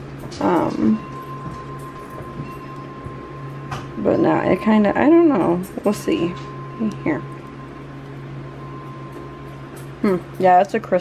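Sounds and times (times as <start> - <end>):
faint high whine: 0.0 - 11.0
low electrical hum: 0.0 - 11.0.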